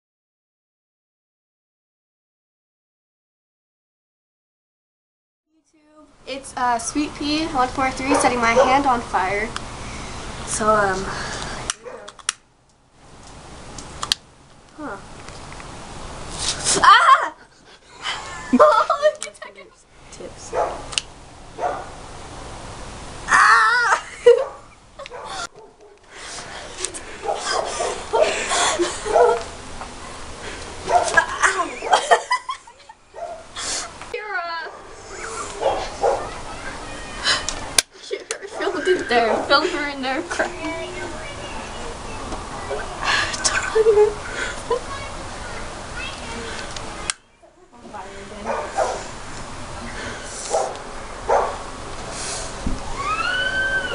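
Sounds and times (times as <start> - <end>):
people talking: 5.6 - 9.6, 10.5 - 12.1, 14.8 - 15.0, 18.2 - 20.6, 31.2 - 32.1, 34.1 - 49.0
sharp clicks: 11.7 - 12.4, 13.2 - 14.3
high wavering squeal: 34.2 - 37.4, 52.9 - 53.9
hand sanitizer igniting with hiss: 52.0 - 52.7.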